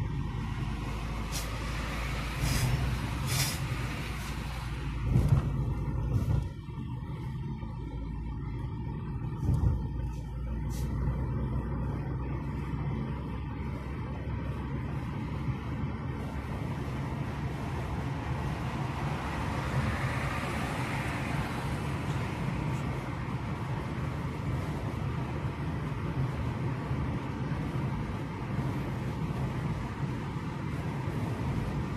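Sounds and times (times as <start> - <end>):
car engine rumble from inside: 0.0 - 31.9
tyre hiss: 1.2 - 4.7.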